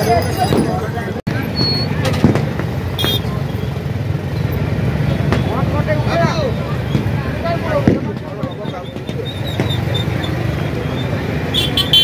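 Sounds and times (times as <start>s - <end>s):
crowd talking: 0.0s - 12.0s
motorcycle engines rumbling: 0.0s - 12.0s.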